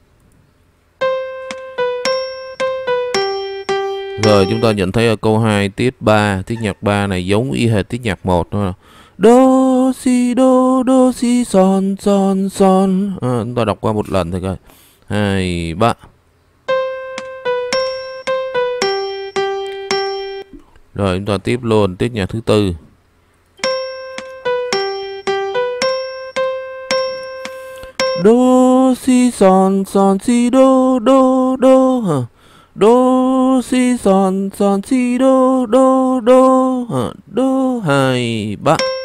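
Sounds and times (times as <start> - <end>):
slow piano melody: 1.0 - 4.8, 16.6 - 20.6, 23.6 - 29.0, 38.8 - 39.0.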